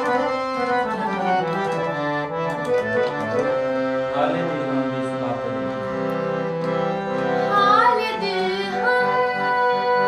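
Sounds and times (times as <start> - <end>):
held accompanying notes: 0.0 - 10.0.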